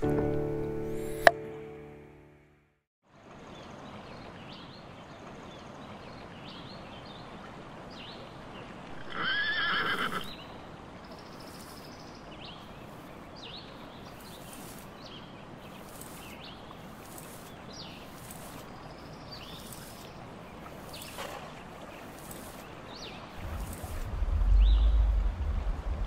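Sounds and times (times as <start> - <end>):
sustained music chord: 0.0 - 2.8
horse whinnying: 8.9 - 10.3.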